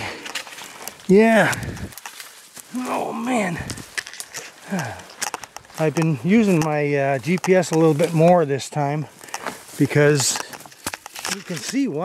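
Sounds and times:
footsteps through brush: 0.0s - 12.0s
twigs snapping: 0.0s - 12.0s.

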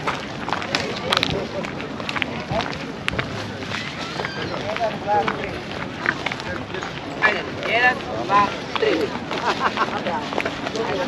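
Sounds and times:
outdoor background noise: 0.0s - 11.0s
people talking: 0.0s - 11.0s.

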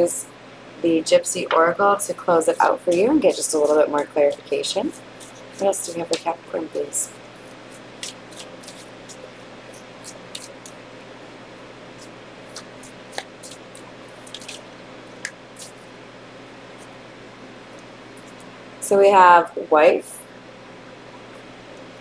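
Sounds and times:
faint room hum: 0.0s - 22.0s
cards being shuffled by hand: 2.6s - 10.8s, 12.0s - 15.9s.

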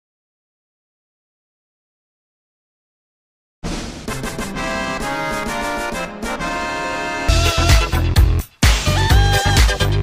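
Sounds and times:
brass tune: 3.6s - 9.6s.

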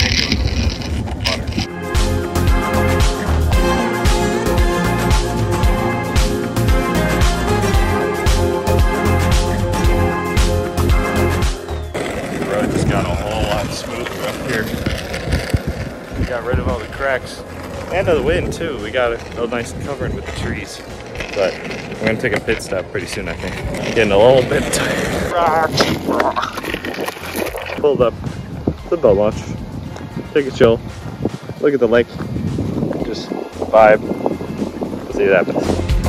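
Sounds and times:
wind rumble on microphone: 0.0s - 1.7s, 12.1s - 36.0s
skateboard wheels rolling on asphalt: 0.0s - 36.0s
background music: 0.1s - 36.0s
man talking: 12.3s - 15.0s, 16.1s - 26.2s.

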